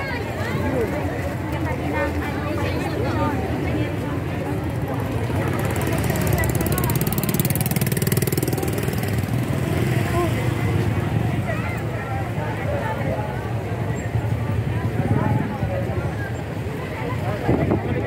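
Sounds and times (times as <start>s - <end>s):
crowd chatter: 0.0s - 18.0s
vehicle engine running: 4.3s - 12.4s.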